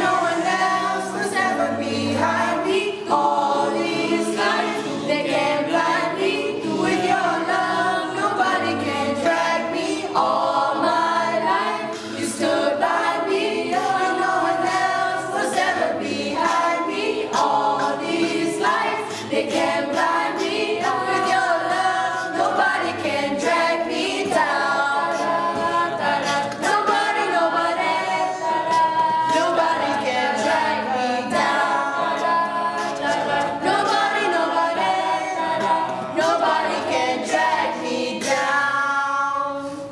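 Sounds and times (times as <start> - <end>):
group singing in harmony: 0.0 - 39.9
beatboxing: 10.9 - 39.9.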